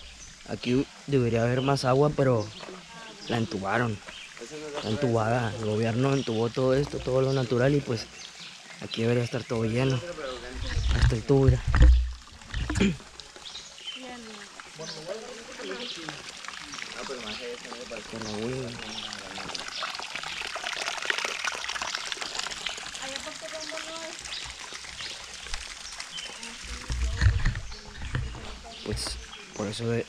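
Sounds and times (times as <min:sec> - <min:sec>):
water trickling over rocks: 0:00.0 - 0:30.0.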